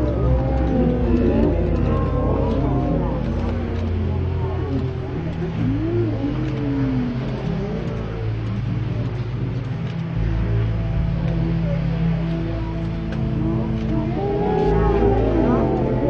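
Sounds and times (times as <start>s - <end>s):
wavering voice-like tones: 0.0s - 9.8s, 11.4s - 16.0s
low bass line: 0.0s - 16.0s.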